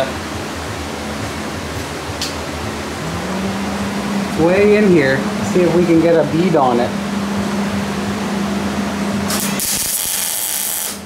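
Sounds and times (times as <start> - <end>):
low hum: 0.0 - 9.8
welder arc sizzling hiss: 9.3 - 11.0.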